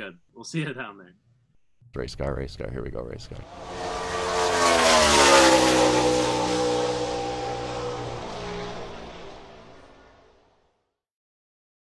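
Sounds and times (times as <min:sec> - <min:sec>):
race car engine running: 0:03.5 - 0:10.3.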